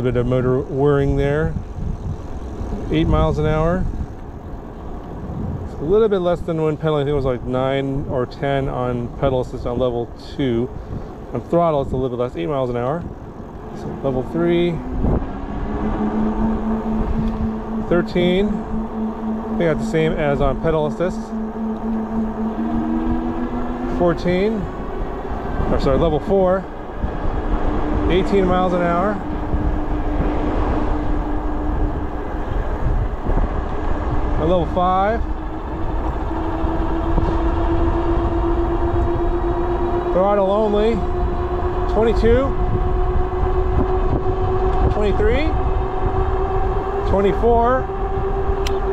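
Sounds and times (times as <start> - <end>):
low rumble: 0.0 - 48.9
wind noise on microphone: 0.0 - 48.9
electric bike motor whirring: 0.1 - 7.6, 8.4 - 48.9.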